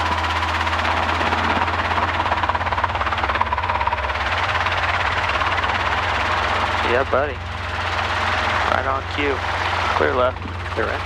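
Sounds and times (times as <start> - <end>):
faint steady whine: 0.0 - 11.0
helicopter rotor and engine: 0.0 - 11.0.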